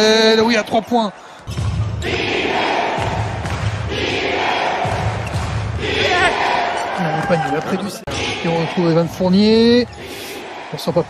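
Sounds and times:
crowd noise: 0.0 - 11.0
basketball bouncing on court: 3.0 - 3.9, 4.8 - 5.8.

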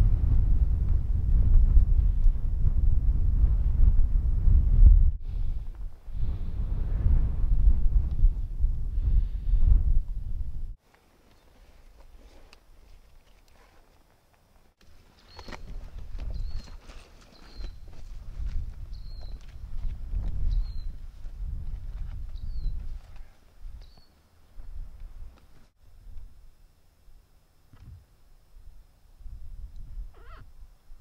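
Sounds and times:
low rumble: 0.0 - 10.8
wind rumble on microphone: 0.0 - 10.8, 15.3 - 26.6, 27.7 - 31.0
hooves clattering on rock: 10.9 - 25.7
rising wavering animal call: 30.1 - 30.5.

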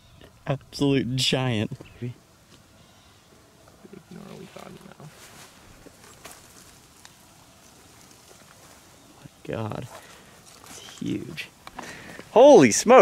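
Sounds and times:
faint ticks and rustles: 1.6 - 12.4.

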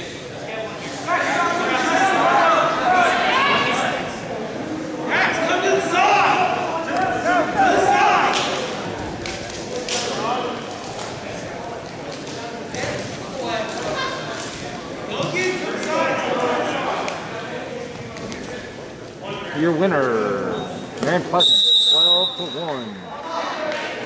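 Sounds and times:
voices shouting in a gymnasium: 0.0 - 24.0.

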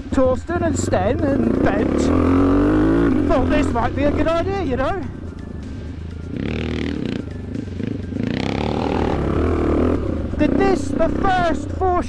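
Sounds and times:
music: 0.0 - 12.0
motocross engine pulling: 0.2 - 5.3, 6.3 - 12.0.

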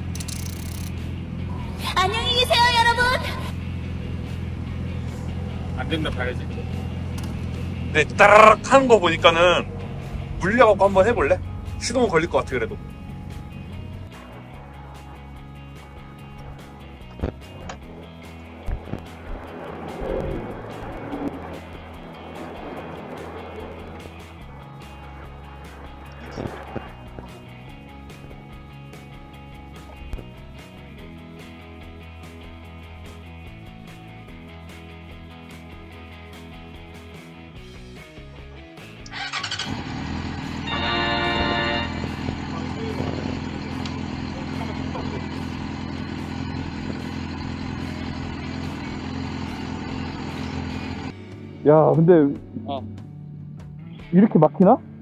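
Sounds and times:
motorcycle engine cranking and running: 0.0 - 1.6, 3.5 - 31.2, 39.0 - 51.1
background music: 0.0 - 55.0.

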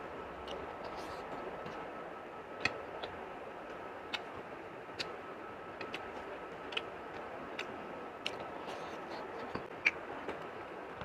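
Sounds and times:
person eating with smacking clicks: 5.8 - 10.5.

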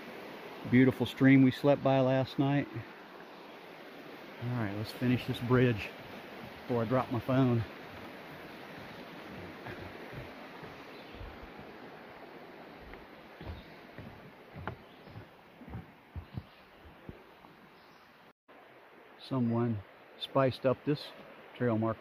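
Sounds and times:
stream rushing: 0.0 - 22.0
footsteps on wooden planks: 6.4 - 17.6.

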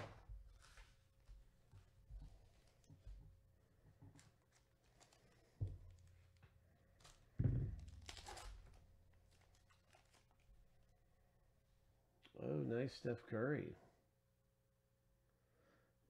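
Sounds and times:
foil wrapper crinkling tear: 4.4 - 6.1, 7.8 - 10.5.

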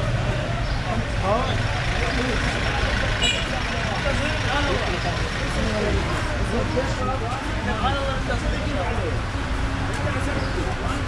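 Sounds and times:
many men talking: 0.0 - 11.0.

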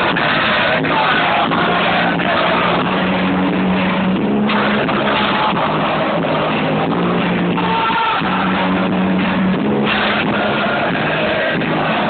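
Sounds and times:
live punk rock band: 0.0 - 12.0.

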